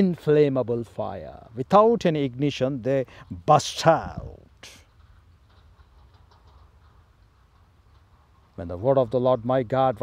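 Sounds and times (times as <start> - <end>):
faint light ticks: 4.6 - 8.6.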